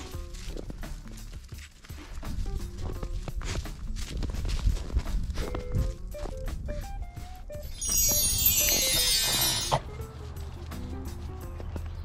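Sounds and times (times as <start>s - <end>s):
footsteps crunching in snow: 0.0s - 6.4s
faint music: 0.0s - 12.0s.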